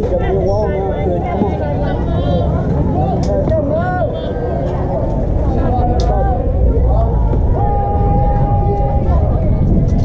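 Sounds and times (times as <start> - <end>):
players calling and chattering: 0.0 - 10.0
wind buffeting microphone: 0.0 - 10.0.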